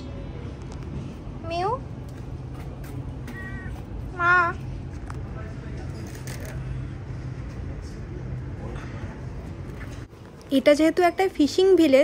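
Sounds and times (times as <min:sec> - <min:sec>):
cat meowing: 0:03.2 - 0:04.6.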